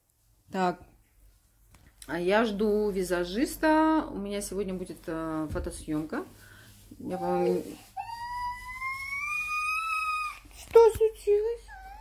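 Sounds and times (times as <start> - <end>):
toddler crying: 7.8 - 10.5, 11.6 - 12.0.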